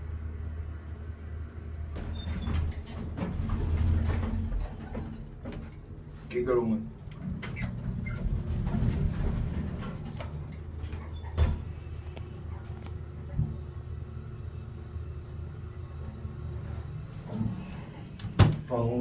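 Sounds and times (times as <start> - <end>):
elevator low rumble: 0.0 - 19.0
elevator thump: 7.2 - 11.8, 17.2 - 18.8.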